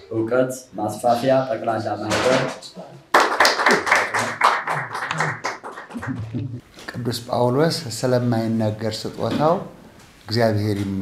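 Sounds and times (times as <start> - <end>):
people clapping: 3.1 - 6.6.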